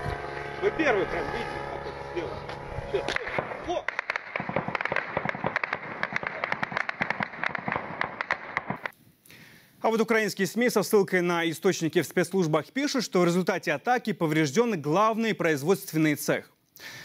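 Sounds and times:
voices: 0.0 - 3.9
rapid gunfire cracks: 3.1 - 8.9.

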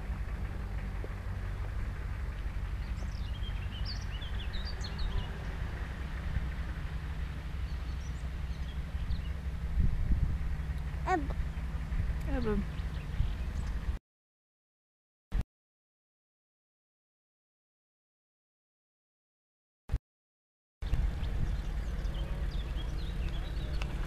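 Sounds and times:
van engine rumbling: 0.0 - 14.0, 20.8 - 24.0
birds chirping: 0.4 - 9.6, 10.4 - 14.0, 20.8 - 24.0.

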